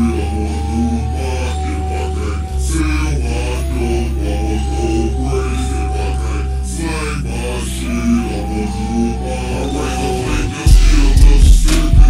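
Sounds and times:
deep bass line: 0.0s - 12.0s
low drawn-out rap vocal: 0.0s - 12.0s.

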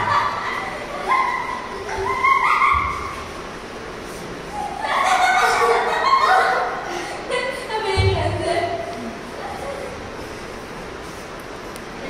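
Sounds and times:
puppy high-pitched calls: 1.0s - 3.3s.

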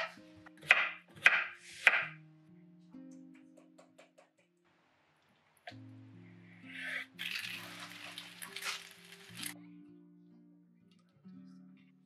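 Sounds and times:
knife chopping on wooden board: 0.0s - 2.2s
faint background music: 0.0s - 12.0s.

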